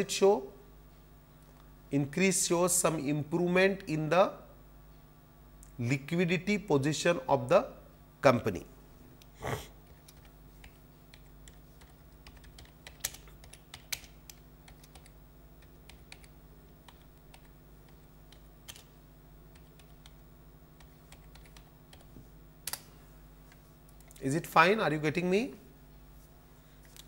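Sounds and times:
low electrical hum: 0:00.0 - 0:27.0
keyboard typing: 0:09.8 - 0:18.9, 0:19.5 - 0:20.2, 0:20.8 - 0:22.1.

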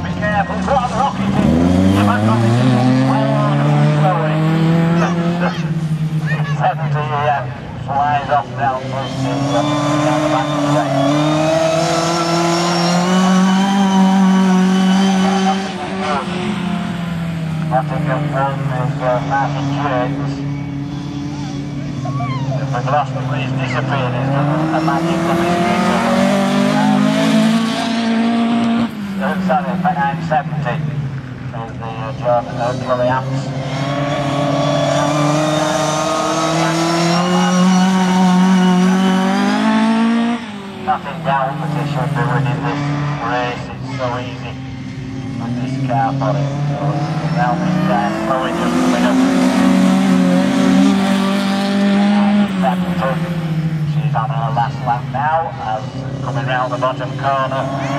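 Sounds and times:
race car engine at high revs: 0:00.0 - 0:57.9.

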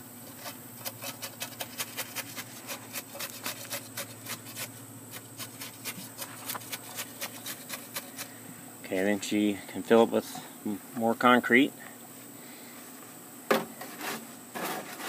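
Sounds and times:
trowel scraping wet concrete: 0:00.3 - 0:08.4, 0:13.8 - 0:15.0.

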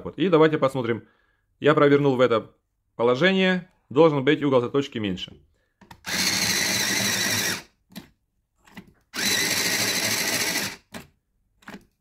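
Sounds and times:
electric pencil sharpener motor: 0:06.0 - 0:07.7, 0:09.1 - 0:11.0.

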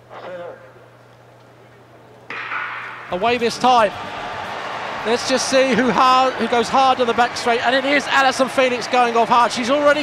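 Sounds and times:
stadium low hum: 0:00.0 - 0:10.0
crowd noise: 0:01.6 - 0:10.0.

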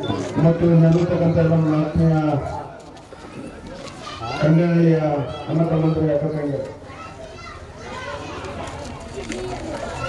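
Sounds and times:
children's voices: 0:03.2 - 0:10.0.

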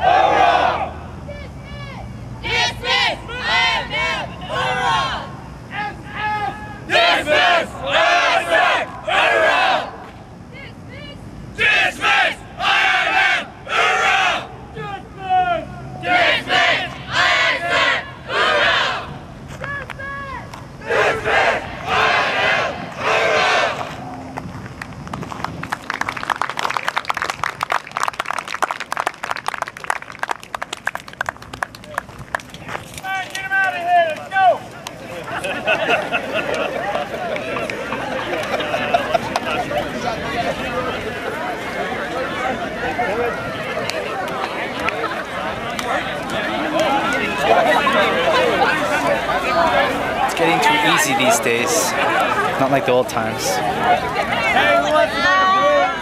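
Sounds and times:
group shouting in unison: 0:00.0 - 0:01.0, 0:11.6 - 0:14.5, 0:15.2 - 0:19.1
crowd applause: 0:25.4 - 0:32.7, 0:34.9 - 0:56.0.

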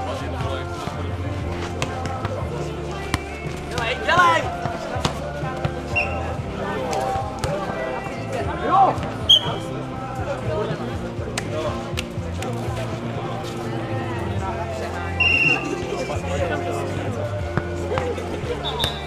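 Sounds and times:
music playing: 0:00.0 - 0:19.0
players shouting: 0:01.6 - 0:10.0, 0:14.0 - 0:19.0.

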